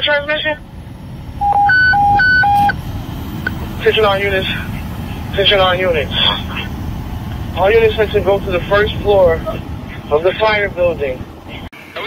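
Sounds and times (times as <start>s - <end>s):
radio alert tone beeps: 1.4s - 2.8s.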